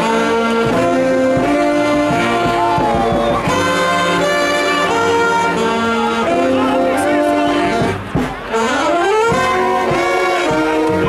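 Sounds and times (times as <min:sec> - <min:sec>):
saxophones and accordion chords: 0:00.0 - 0:11.0
string band playing: 0:00.0 - 0:11.0.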